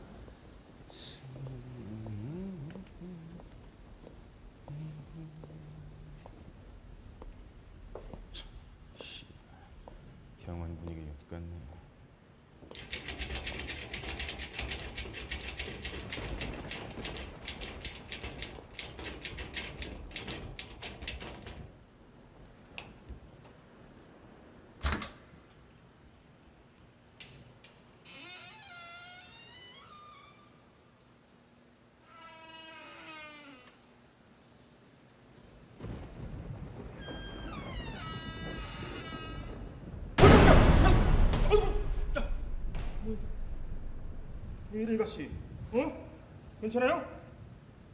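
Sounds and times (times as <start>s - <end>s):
rapid mechanical clicking: 12.7s - 21.7s
low rumble: 35.8s - 45.7s.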